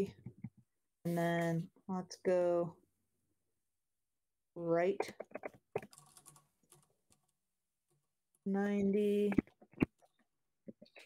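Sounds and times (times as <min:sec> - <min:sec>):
soft keyboard typing: 0:05.0 - 0:07.2.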